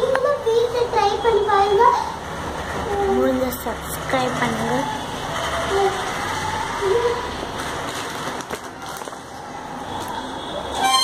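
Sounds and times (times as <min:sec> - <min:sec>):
plastic bag crinkling: 0:07.6 - 0:10.3.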